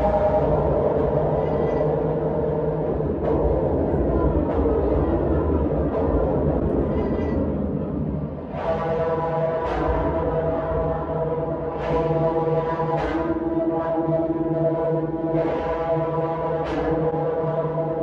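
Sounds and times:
steady low rumble: 0:00.0 - 0:08.7.

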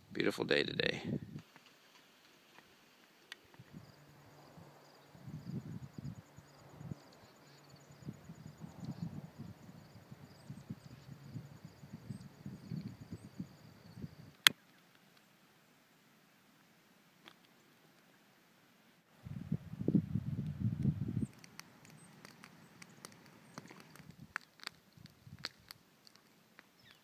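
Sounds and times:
insects trilling: 0:03.6 - 0:14.4, 0:21.0 - 0:27.0.

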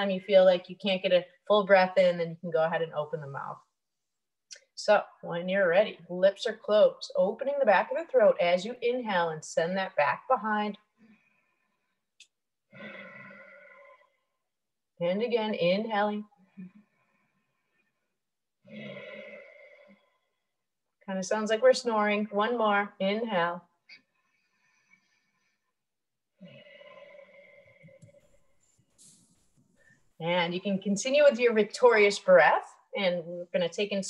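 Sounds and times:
woman breathing through nose: 0:12.7 - 0:14.3, 0:16.6 - 0:20.4, 0:26.4 - 0:30.1.

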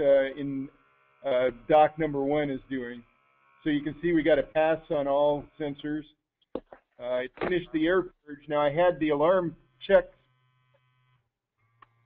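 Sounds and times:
gas monitor alarm buzzing: 0:00.0 - 0:06.1.

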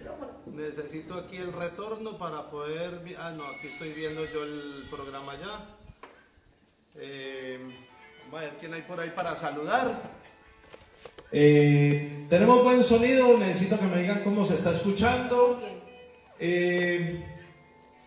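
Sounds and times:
man's voice: 0:11.4 - 0:15.8, 0:16.4 - 0:17.4.

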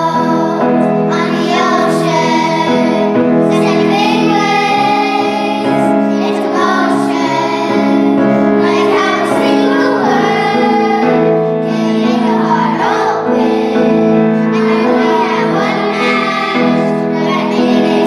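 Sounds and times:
girls singing pop song: 0:00.0 - 0:18.0
sustained accompanying notes: 0:00.0 - 0:18.0.

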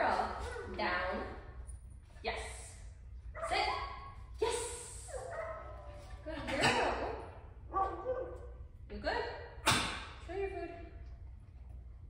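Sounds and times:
woman speaking: 0:00.0 - 0:01.4, 0:02.2 - 0:02.8, 0:03.4 - 0:05.4, 0:06.2 - 0:07.3, 0:08.9 - 0:09.4, 0:10.3 - 0:10.9.

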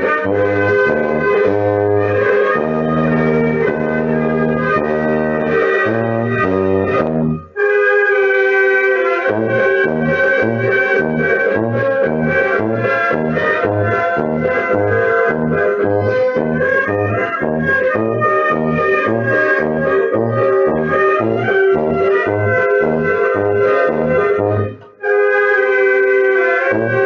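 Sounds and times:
brass band playing a march: 0:00.0 - 0:27.0.

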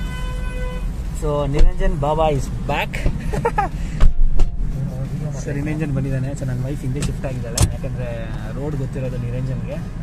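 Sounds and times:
low rumble inside car: 0:00.0 - 0:10.0
car door shutting: 0:03.9 - 0:04.6, 0:06.9 - 0:07.8.

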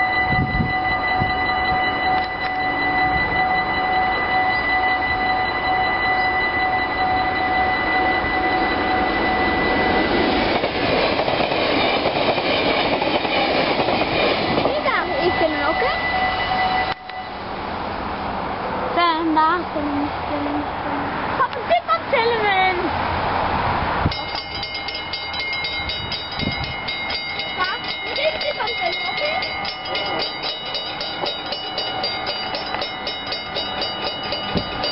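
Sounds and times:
level crossing bell ringing: 0:00.0 - 0:12.1, 0:12.9 - 0:17.6, 0:24.1 - 0:34.9
train passing: 0:00.0 - 0:34.9.

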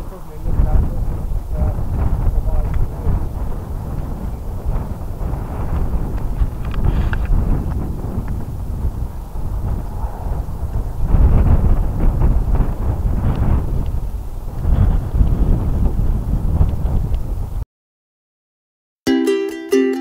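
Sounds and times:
wind buffeting microphone: 0:00.0 - 0:17.6.

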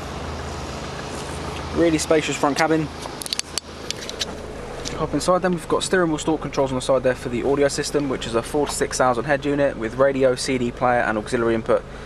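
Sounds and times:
diesel engine idling: 0:00.0 - 0:12.0
camera handling clicks and rustles: 0:03.0 - 0:04.4.

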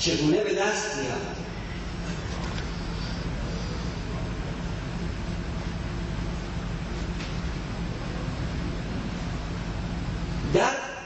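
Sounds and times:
low hum: 0:01.0 - 0:10.6.

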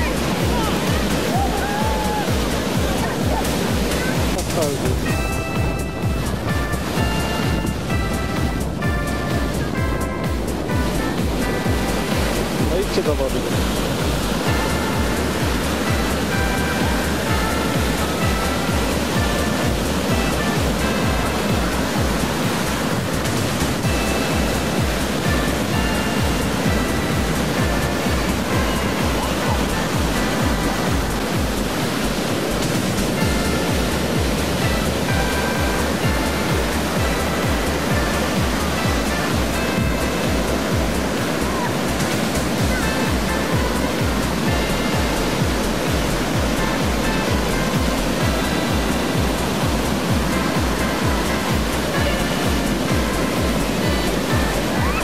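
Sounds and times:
background music with low beat: 0:00.0 - 0:55.0
surf breaking on beach: 0:00.0 - 0:55.0.

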